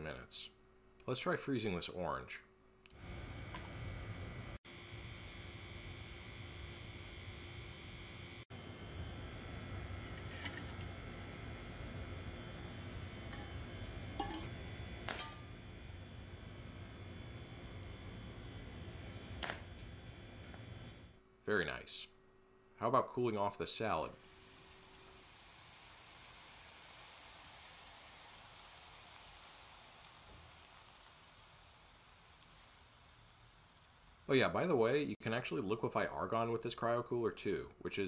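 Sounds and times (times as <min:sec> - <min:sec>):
steady background hum: 0:00.0 - 0:24.1.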